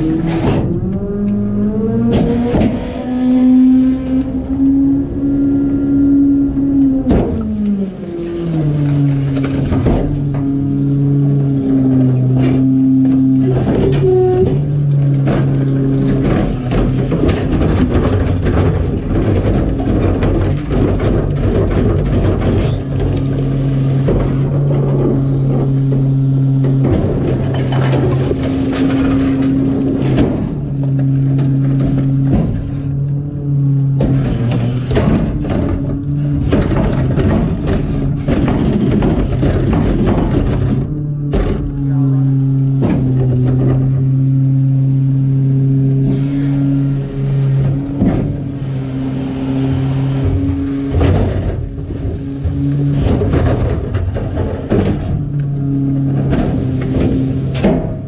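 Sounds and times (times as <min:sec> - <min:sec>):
cart tippers clanking and banging: 0:00.0 - 0:58.0
garbage truck engine and hydraulics: 0:00.0 - 0:58.0.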